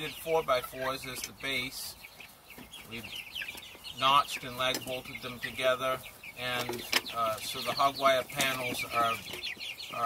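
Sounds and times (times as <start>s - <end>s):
chicks cheeping: 0.0s - 10.0s.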